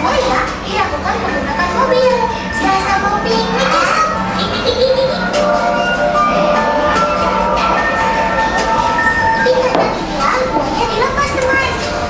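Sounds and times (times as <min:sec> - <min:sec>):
music playing: 0:00.0 - 0:12.0
child chattering: 0:01.6 - 0:05.4.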